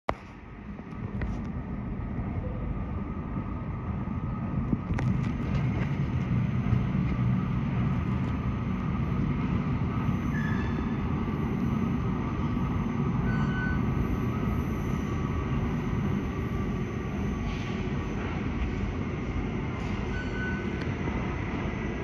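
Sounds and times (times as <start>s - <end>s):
metro train rumble in tunnel: 0.1s - 22.0s.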